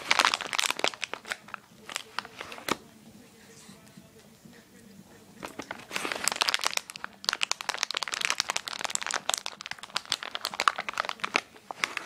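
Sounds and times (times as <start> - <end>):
crinkly treat bag crackling: 0.0 - 2.8, 5.4 - 12.0.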